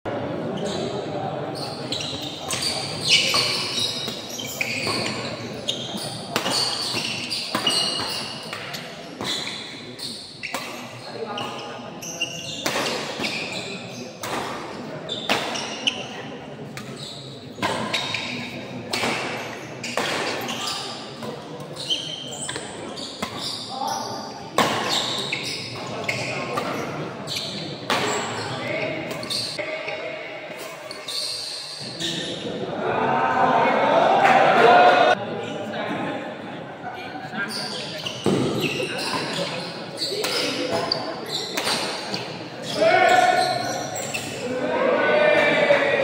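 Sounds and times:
crowd voices: 0.0s - 46.0s
shoes squeaking on court: 0.5s - 16.1s, 16.7s - 32.4s, 37.4s - 44.4s.

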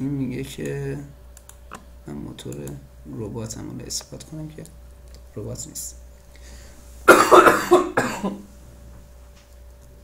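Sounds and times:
person coughing: 7.1s - 8.4s.

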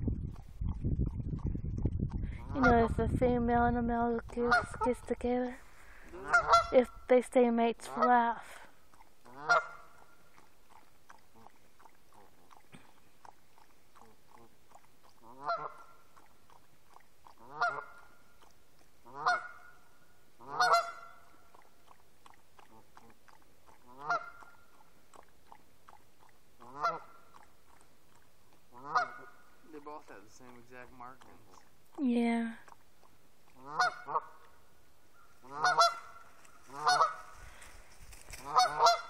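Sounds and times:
geese honking: 6.2s - 6.9s, 9.3s - 10.0s, 15.2s - 16.0s, 17.4s - 18.2s, 19.1s - 21.3s, 23.9s - 24.6s, 26.6s - 27.3s, 28.7s - 29.6s, 33.6s - 37.6s, 38.3s - 39.0s.

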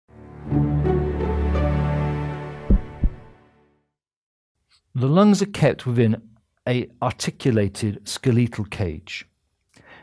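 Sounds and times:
short low thumps: 2.7s - 3.3s.

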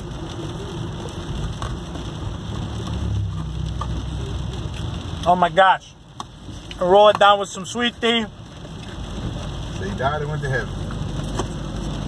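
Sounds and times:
car road rumble: 0.0s - 12.0s.

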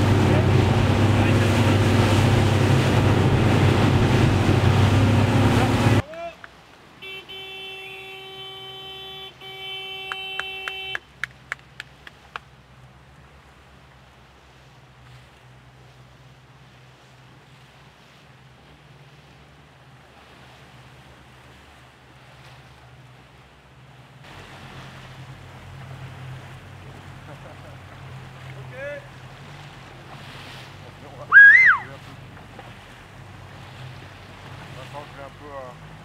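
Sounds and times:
boat engine droning: 0.0s - 36.0s
water and wind noise: 0.0s - 36.0s
high whistle-like call: 31.3s - 31.9s
person shouting: 31.3s - 31.9s.

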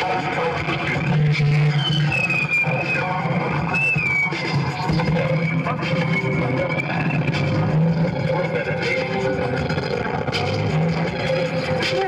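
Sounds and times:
electronic drones: 0.0s - 12.0s
low electronic notes: 0.0s - 12.0s.

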